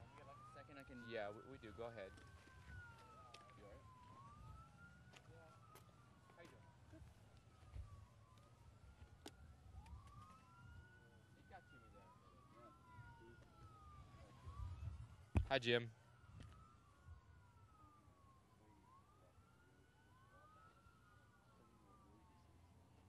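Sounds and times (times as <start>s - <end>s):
emergency sirens wailing: 0.0s - 23.0s.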